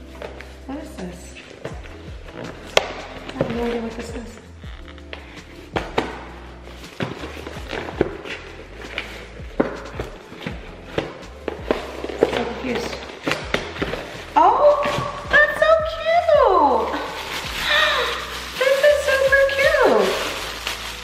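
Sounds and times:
background music: 0.0s - 21.0s
gift box taps and rustles: 1.6s - 16.0s.

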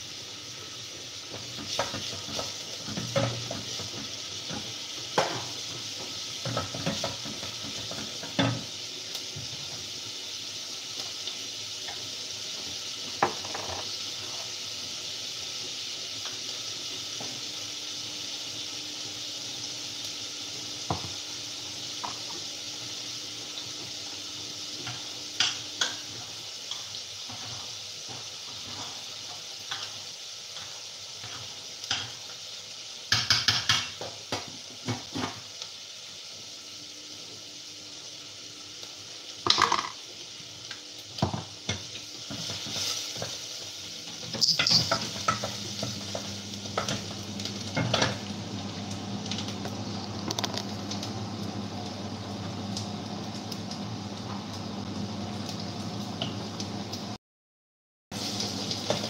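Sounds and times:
food sizzling in a pot: 0.0s - 57.2s, 58.1s - 59.0s
metal utensil stirring and scraping: 44.3s - 45.6s
metal clinks against steel pots: 44.4s - 45.1s.

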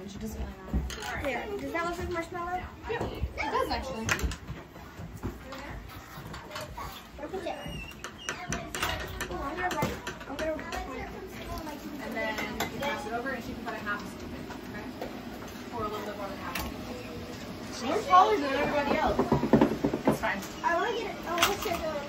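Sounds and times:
children and adults talking: 0.0s - 22.0s.

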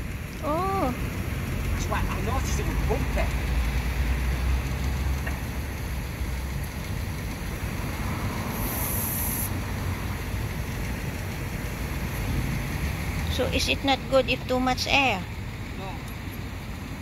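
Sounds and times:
low background rumble: 0.0s - 17.0s
air hissing at tyre valve: 3.3s - 10.5s.

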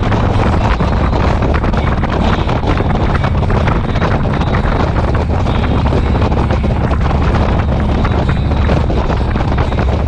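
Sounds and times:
motorcycle engine running: 0.0s - 10.0s
wind buffeting microphone: 0.0s - 10.0s.

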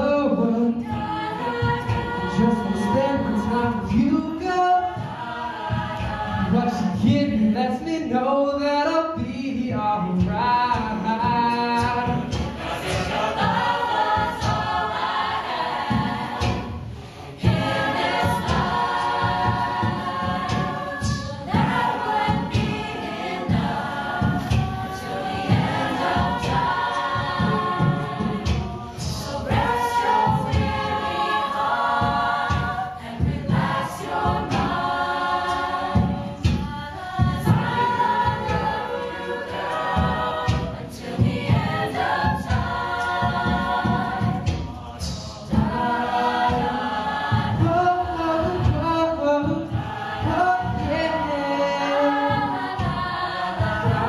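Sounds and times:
a cappella group singing: 0.0s - 54.0s.

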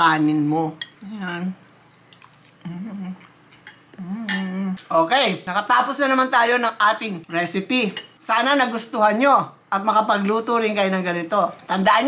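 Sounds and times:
woman humming mm of approval: 2.6s - 3.3s, 3.9s - 4.8s.

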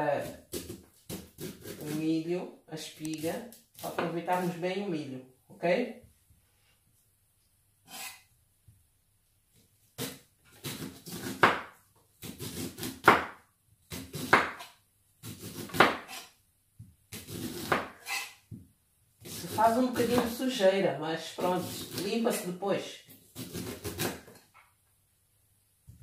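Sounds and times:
knife scraping corn cobs: 7.8s - 8.3s, 12.2s - 13.1s, 13.9s - 16.4s, 17.2s - 18.4s, 19.2s - 20.3s, 21.4s - 22.5s, 23.1s - 24.5s.

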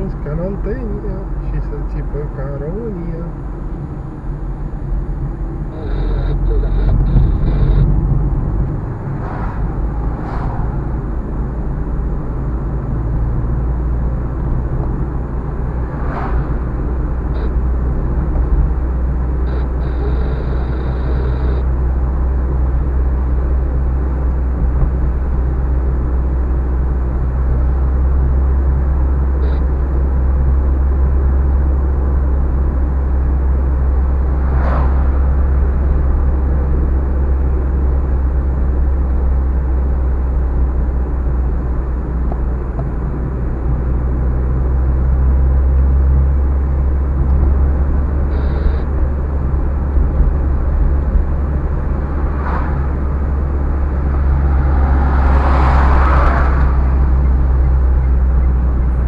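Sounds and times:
car engine and tyres drone: 0.0s - 59.0s
van passing: 0.0s - 59.0s.

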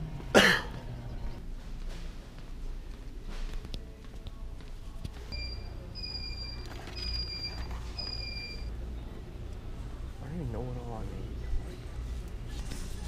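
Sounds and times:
low background hum: 0.0s - 13.0s.

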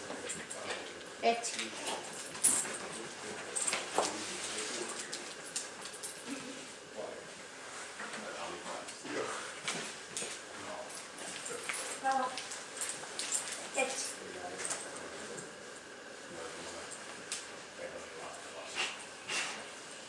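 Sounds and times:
low voices murmuring: 0.0s - 20.0s
dog sniffing: 18.7s - 19.6s.

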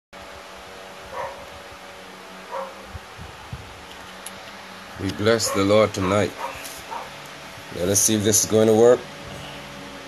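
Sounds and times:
steady hum and hiss: 0.2s - 10.0s
dog barking: 1.1s - 1.4s, 2.5s - 2.8s, 5.4s - 7.2s.

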